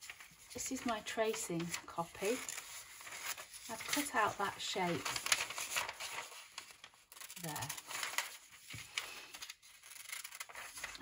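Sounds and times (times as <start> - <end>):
paper rustling and crinkling: 0.0 - 11.0.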